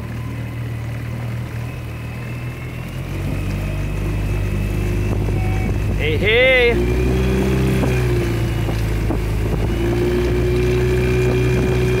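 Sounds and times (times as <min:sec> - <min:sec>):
outboard engine running: 0:00.0 - 0:12.0.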